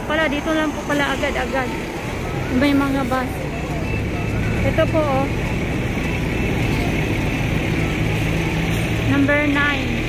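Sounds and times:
bus engines idling: 0.0 - 10.0
traffic noise: 0.0 - 10.0.

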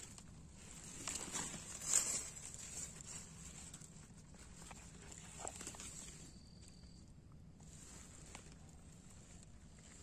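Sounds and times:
dry leaves rustling and crackling: 0.0 - 6.3.

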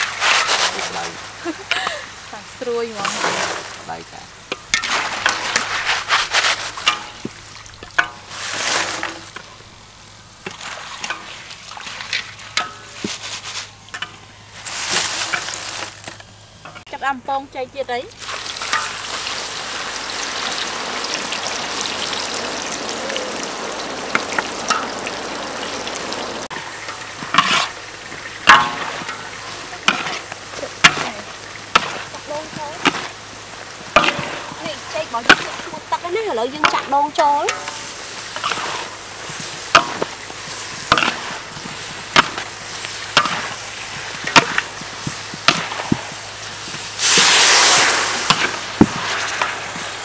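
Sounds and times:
oil sizzling in a wok: 0.0 - 50.0.

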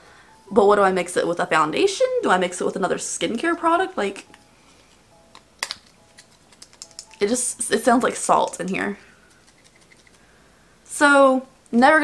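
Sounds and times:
crystals rattling in a jar: 8.3 - 10.2.

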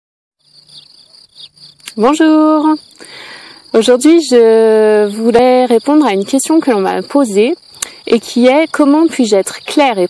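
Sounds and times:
insects chirring: 0.4 - 10.0.

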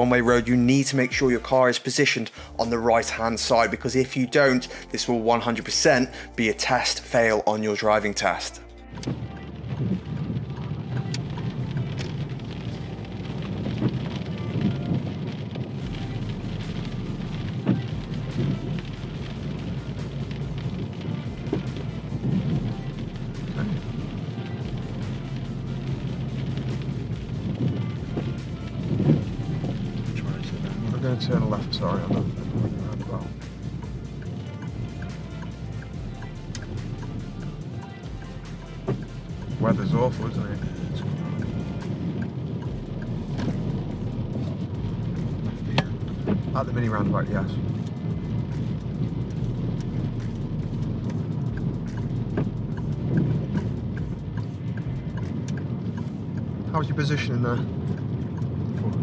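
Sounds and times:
background music with deep bass: 0.0 - 59.0
car driving on wet road: 0.0 - 59.0.

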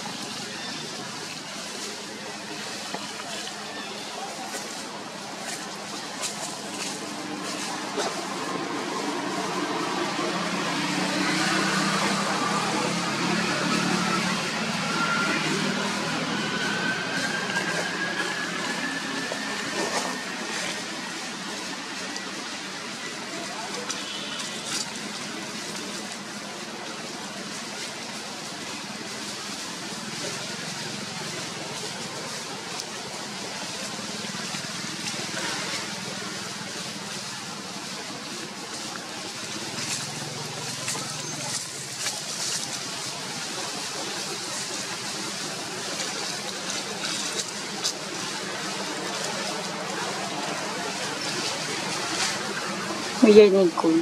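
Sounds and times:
outdoor noise: 0.0 - 54.0.

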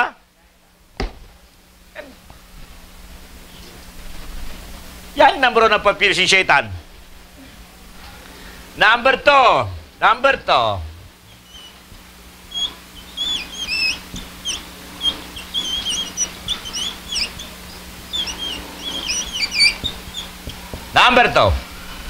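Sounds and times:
marker squeaking on whiteboard: 11.3 - 11.9, 12.5 - 21.6.

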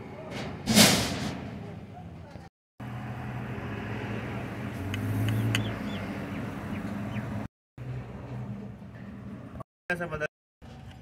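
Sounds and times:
engine humming: 2.3 - 9.6.

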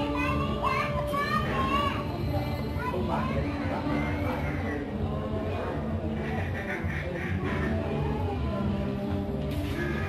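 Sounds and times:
children calling out and playing: 0.0 - 5.0.

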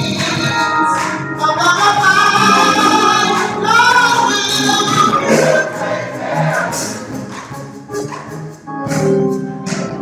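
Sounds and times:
choir singing along: 1.9 - 7.5.

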